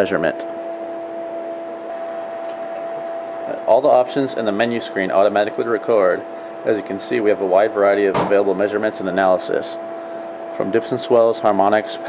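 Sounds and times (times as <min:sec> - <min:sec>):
background hum and hiss: 0:00.0 - 0:12.0.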